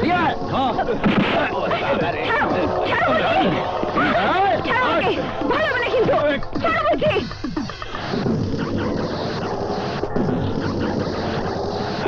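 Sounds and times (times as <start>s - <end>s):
men shouting and yelling: 0.0s - 7.0s.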